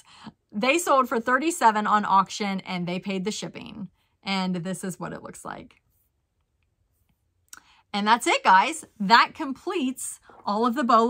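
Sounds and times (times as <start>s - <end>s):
woman speaking: 0.0s - 5.8s, 7.9s - 11.0s.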